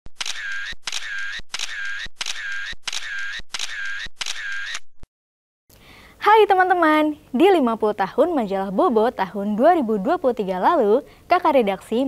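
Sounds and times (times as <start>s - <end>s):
mechanical click and whir: 0.2s - 4.9s.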